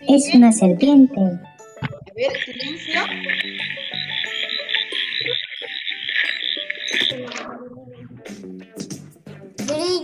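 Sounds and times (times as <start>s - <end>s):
soft background music: 0.0s - 10.0s
frogs calling: 2.3s - 7.4s.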